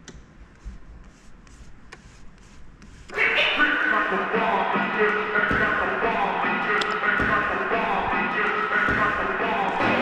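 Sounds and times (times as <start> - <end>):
loud music from turntable: 3.1 - 10.0.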